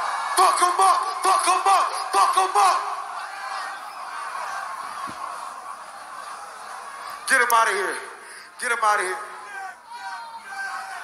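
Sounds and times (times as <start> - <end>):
concert crowd din: 0.0 - 11.0.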